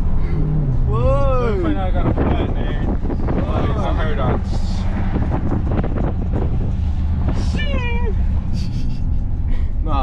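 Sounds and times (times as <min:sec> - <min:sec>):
car engine and road rumble: 0:00.0 - 0:10.0
voices and laughter: 0:08.4 - 0:09.7.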